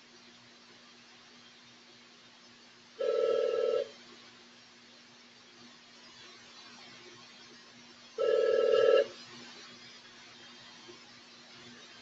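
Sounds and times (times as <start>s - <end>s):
electronic telephone ring: 3.0s - 3.9s, 8.2s - 9.1s.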